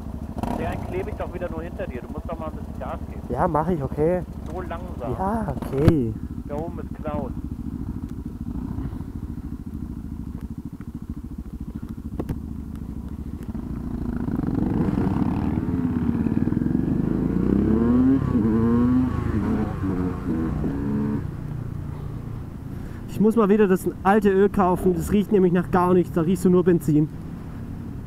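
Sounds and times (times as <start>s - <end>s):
small motorcycle engines revving: 0.0s - 28.0s.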